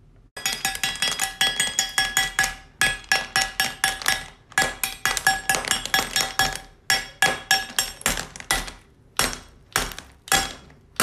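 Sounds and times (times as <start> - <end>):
candy cutting machine clinking: 0.4 - 11.0.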